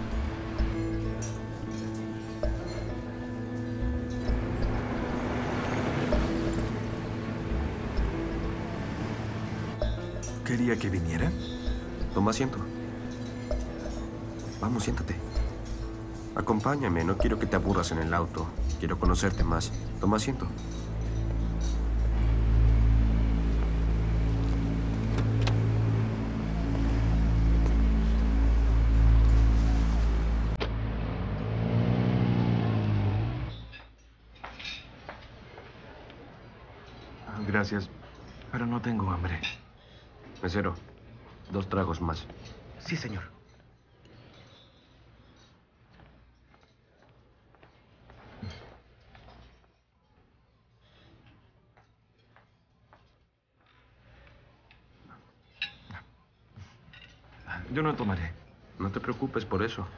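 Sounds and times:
low hum: 0:17.2 - 0:33.8.

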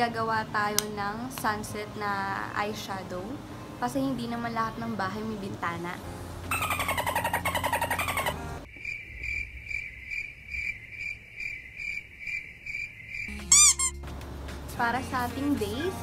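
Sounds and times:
loud warbling call: 0:06.5 - 0:08.6, 0:13.4 - 0:14.0
crickets chirping: 0:06.5 - 0:14.0.

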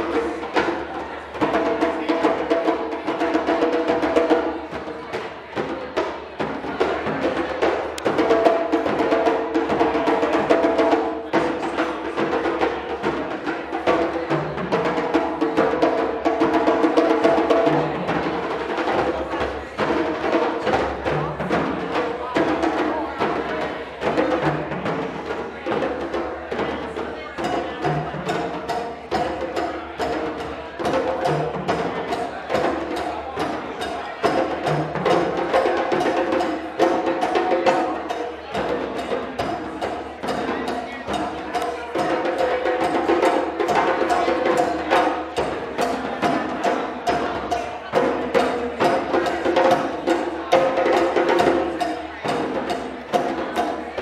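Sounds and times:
djembes played with hands: 0:00.0 - 0:54.0
dunun drums struck with sticks: 0:00.0 - 0:54.0.

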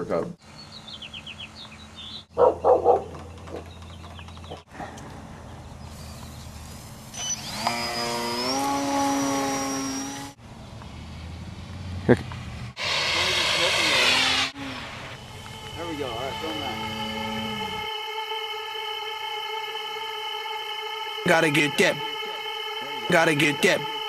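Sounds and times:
dog barking: 0:02.4 - 0:03.2
electric motor whine: 0:07.1 - 0:10.4, 0:12.8 - 0:19.6.

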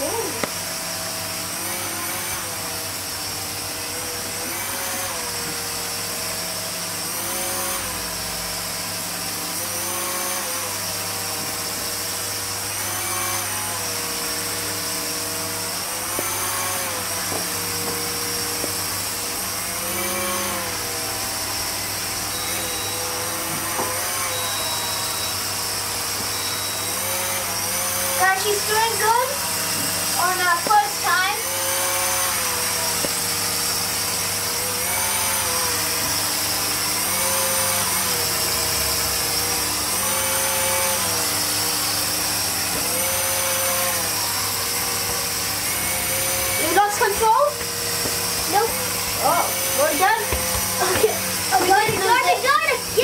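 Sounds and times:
toy propeller motor whining: 0:00.0 - 0:53.0.

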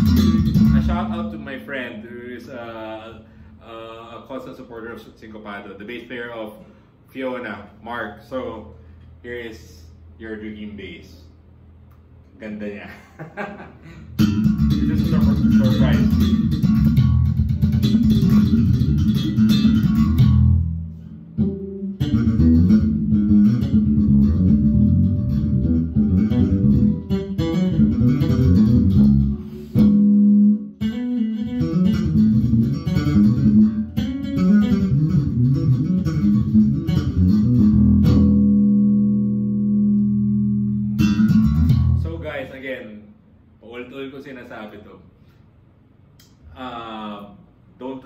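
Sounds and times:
electric bass guitar solo: 0:00.0 - 0:04.2, 0:14.1 - 0:42.2.

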